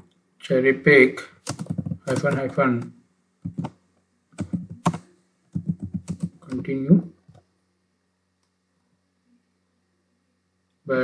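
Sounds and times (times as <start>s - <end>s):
computer keyboard typing: 1.4s - 3.8s, 4.4s - 6.6s.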